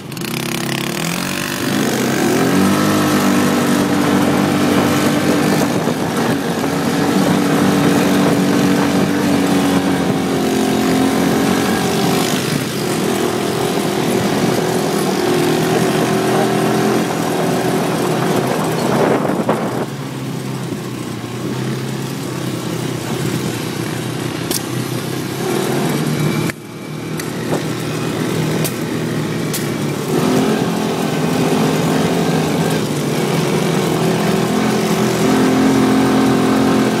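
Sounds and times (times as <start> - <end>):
atv engine running: 0.0 - 37.0.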